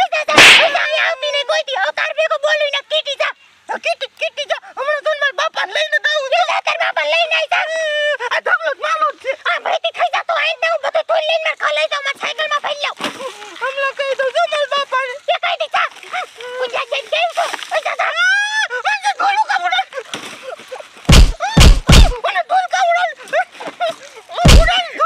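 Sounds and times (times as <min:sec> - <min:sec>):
heavy thumps: 0:21.1 - 0:22.2, 0:24.5 - 0:24.7.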